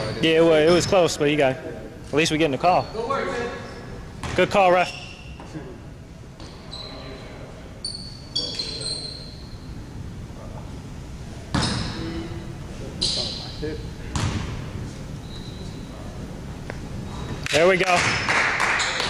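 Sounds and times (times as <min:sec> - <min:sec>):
sneaker squeaks on court: 0:06.4 - 0:07.1, 0:07.8 - 0:09.6, 0:11.5 - 0:12.0, 0:13.0 - 0:14.6, 0:15.2 - 0:16.0
basketball bouncing on hardwood: 0:14.1 - 0:14.5.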